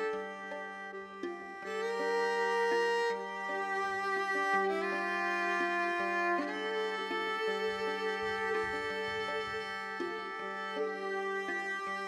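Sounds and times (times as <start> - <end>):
slow bowed string music: 0.0 - 12.0.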